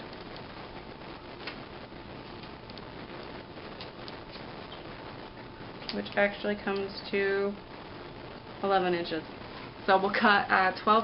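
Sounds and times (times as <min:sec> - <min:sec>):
soft clicks and rustles: 0:00.0 - 0:07.0
background hiss: 0:00.0 - 0:11.0.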